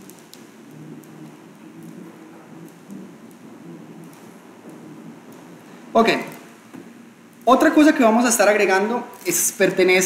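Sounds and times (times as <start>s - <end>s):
faint low murmur: 0.0s - 7.7s.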